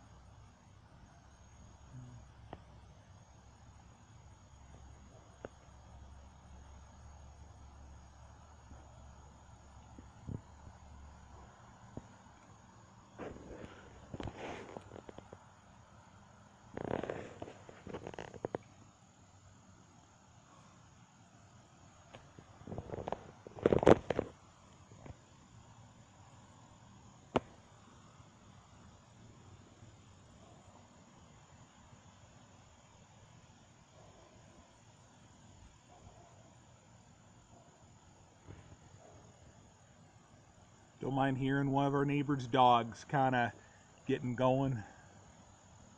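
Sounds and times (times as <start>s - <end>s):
faint outdoor background: 0.0s - 45.9s
dog barking: 35.9s - 36.5s.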